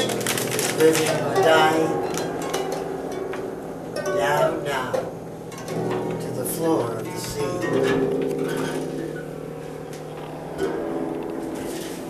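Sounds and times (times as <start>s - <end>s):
faint plucked harp notes: 0.0s - 12.0s
harp chord ringing: 0.0s - 12.0s.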